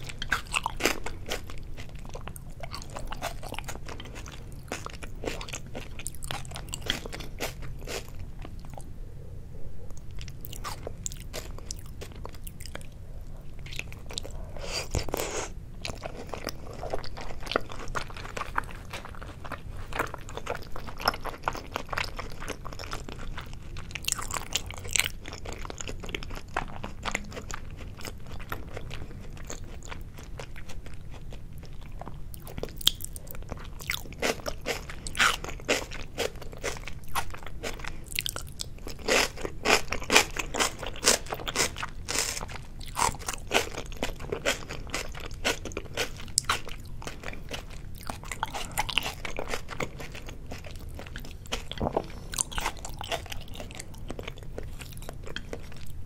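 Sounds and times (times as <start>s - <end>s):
wet chewing clicks and crunches: 0.0s - 8.9s, 9.9s - 56.0s.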